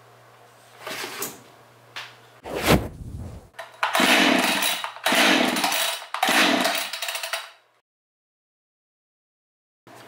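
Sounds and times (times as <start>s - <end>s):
chainsaw pull-start: 3.6s - 7.4s.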